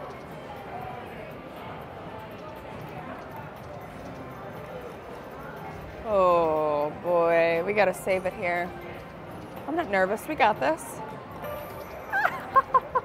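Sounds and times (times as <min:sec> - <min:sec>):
slot machine tones: 0:11.4 - 0:13.0.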